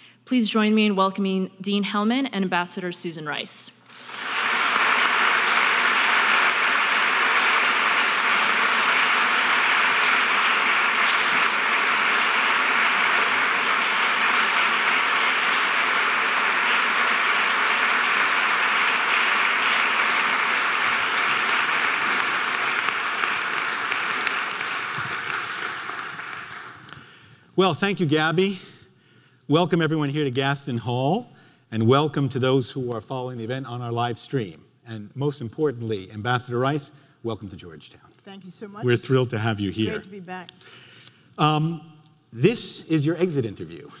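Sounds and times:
audience applauding: 3.9s - 27.2s.

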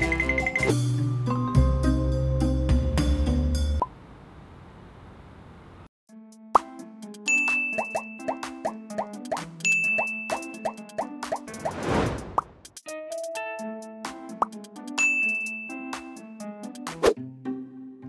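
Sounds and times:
playful plucked background music: 0.0s - 3.8s, 6.1s - 11.8s, 12.7s - 18.0s
rushing sweep: 11.6s - 12.6s.

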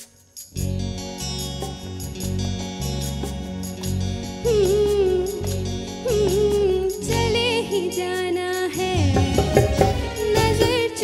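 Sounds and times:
live band playing ballad: 0.5s - 11.0s.

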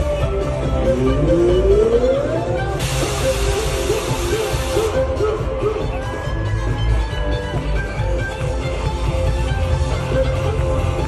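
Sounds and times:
live band playing instrumental: 0.0s - 11.0s
bright hiss: 2.8s - 5.0s.

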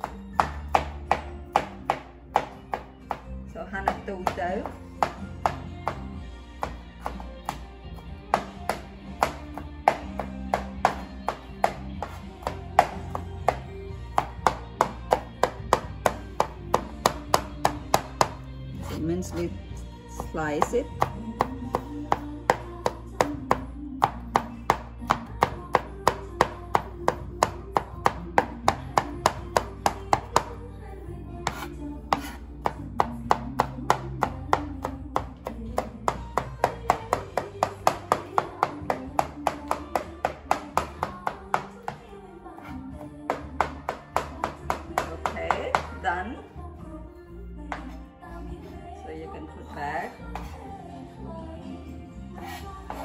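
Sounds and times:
background music: 0.0s - 53.0s
knife chopping on cutting board: 6.6s - 13.6s, 31.4s - 42.0s.

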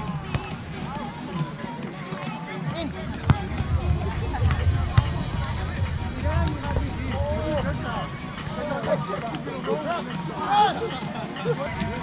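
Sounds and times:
background music: 0.0s - 12.0s
distant chatter: 0.0s - 12.0s.

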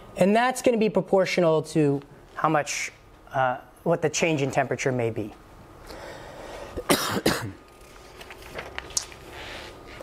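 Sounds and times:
man coughing: 6.8s - 7.6s.

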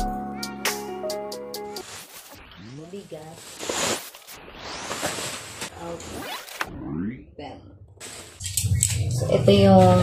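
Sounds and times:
woman speaking: 2.7s - 3.4s, 5.7s - 6.2s, 7.3s - 7.8s, 9.1s - 10.0s.

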